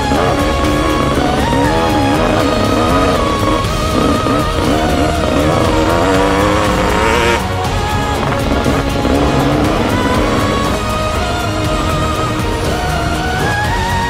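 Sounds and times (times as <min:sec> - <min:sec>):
dirt bike engine revving: 0:00.0 - 0:14.0
music: 0:00.0 - 0:14.0.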